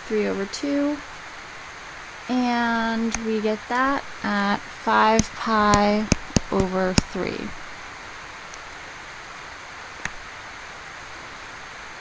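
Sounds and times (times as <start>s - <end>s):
background hiss: 0.0s - 12.0s.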